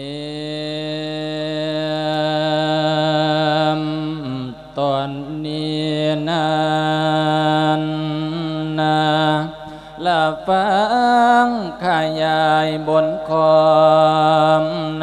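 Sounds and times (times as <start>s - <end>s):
person chanting a sermon: 0.0s - 15.0s.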